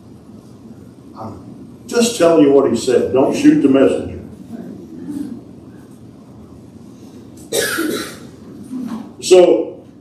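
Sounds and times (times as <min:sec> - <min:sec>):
person coughing: 0:07.5 - 0:09.0.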